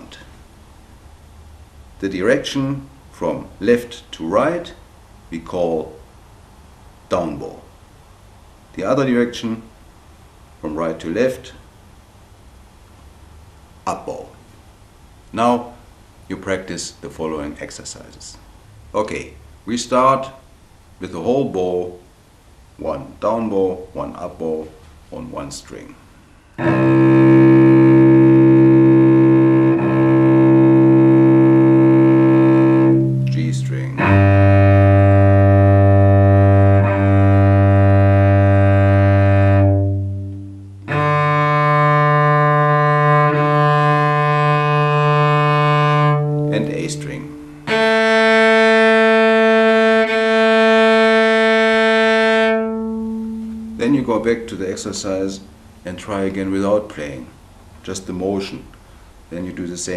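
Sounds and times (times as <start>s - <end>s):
cello long bowed notes: 26.6s - 56.4s.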